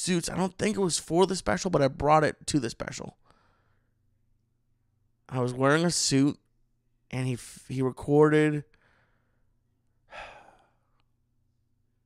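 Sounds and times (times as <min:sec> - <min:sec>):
man sighing: 0:10.1 - 0:11.0.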